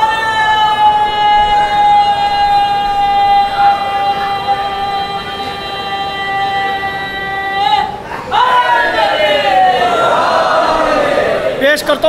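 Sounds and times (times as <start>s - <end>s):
microphone feedback howl: 0.0s - 8.0s.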